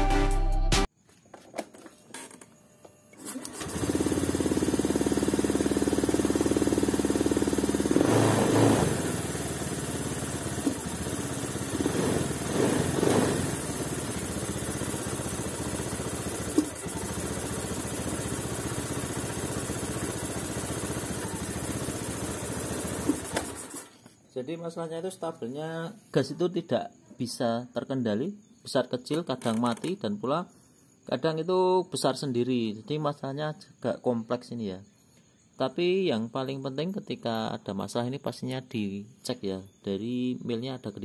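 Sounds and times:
scooter engine idling unevenly: 3.4 - 23.9.

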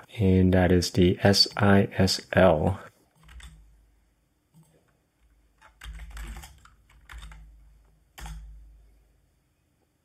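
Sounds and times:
computer keyboard keystrokes: 3.1 - 3.6, 4.6 - 7.6, 8.2 - 8.6.

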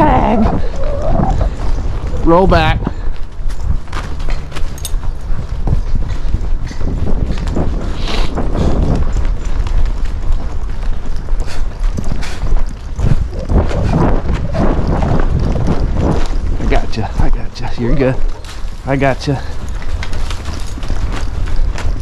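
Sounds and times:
horse hoofbeats on soft dirt: 0.0 - 22.0
steady low rumble: 0.0 - 22.0.

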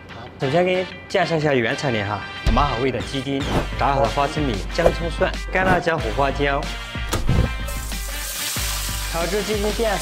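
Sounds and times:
background music: 0.0 - 10.0
food sizzling in hot oil: 7.6 - 10.0.

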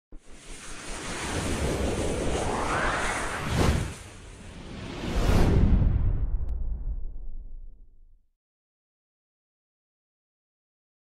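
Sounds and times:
rushing whoosh: 0.2 - 7.5.

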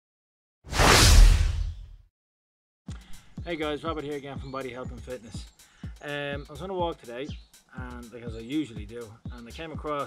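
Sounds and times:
whoosh: 0.7 - 2.0.

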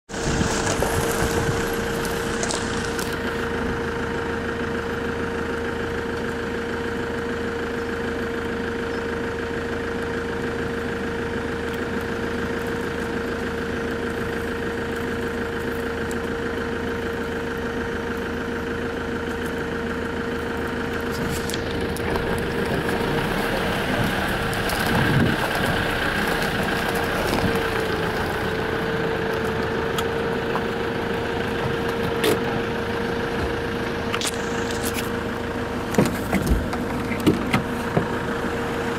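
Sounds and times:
vehicle engine idling: 0.0 - 38.9
rough noise: 0.1 - 3.2.

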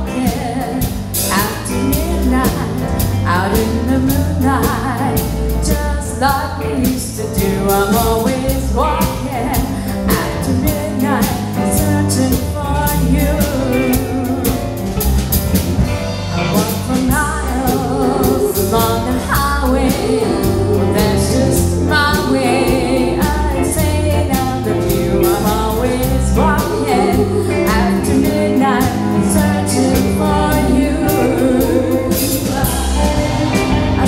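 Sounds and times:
woman singing: 0.0 - 14.6, 16.4 - 34.0
live country band: 0.0 - 34.0.

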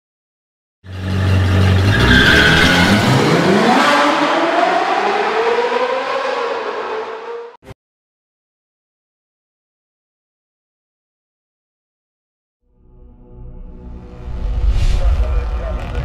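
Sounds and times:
car engine revving: 0.9 - 7.6.

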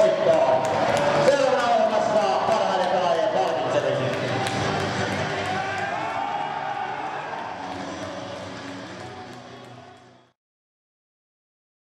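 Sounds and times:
team shouting and chatter: 0.0 - 10.0.

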